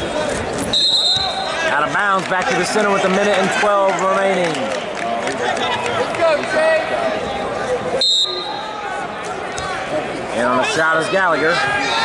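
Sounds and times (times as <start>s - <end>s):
referee whistle blast: 0.7s - 1.6s, 8.0s - 8.7s
people shouting: 10.6s - 12.0s.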